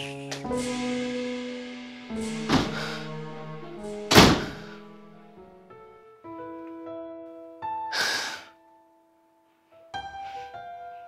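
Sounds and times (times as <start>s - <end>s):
dramatic film score: 0.0s - 5.6s
loud sudden thud: 0.5s - 5.3s.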